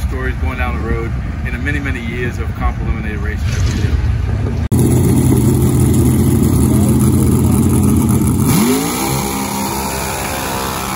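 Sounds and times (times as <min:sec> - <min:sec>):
dragster engine revving: 0:04.7 - 0:10.9.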